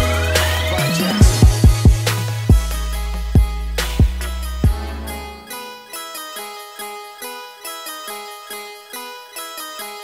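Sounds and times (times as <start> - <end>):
plucked harpsichord-like melody: 4.7 - 10.0.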